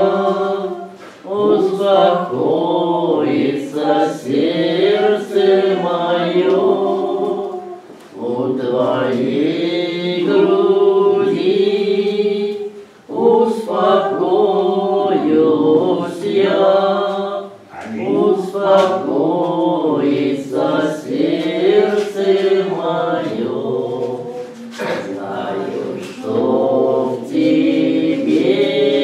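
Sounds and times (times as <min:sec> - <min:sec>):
group singing liturgical chant: 0:00.0 - 0:29.0.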